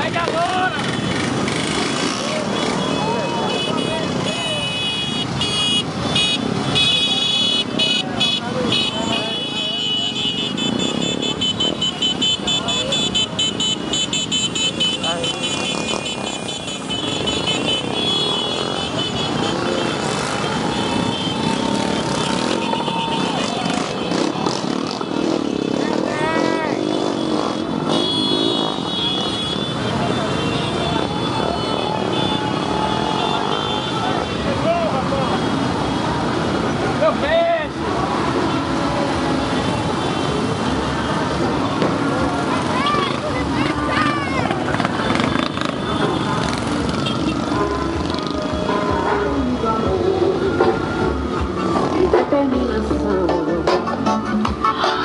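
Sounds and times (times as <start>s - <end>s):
voices and shouting: 0.0s - 1.0s, 2.0s - 4.9s, 18.5s - 27.9s, 29.8s - 53.5s
small motorcycles running: 0.0s - 4.3s, 10.7s - 49.3s.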